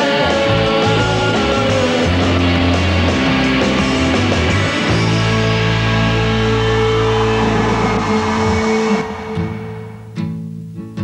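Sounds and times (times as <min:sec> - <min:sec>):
distorted electric guitar chord: 0:00.0 - 0:10.4
steady drone: 0:00.1 - 0:10.3.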